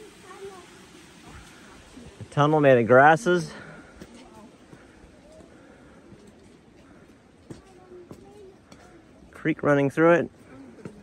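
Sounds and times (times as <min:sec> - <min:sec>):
creek trickling over rock: 0:00.0 - 0:11.0.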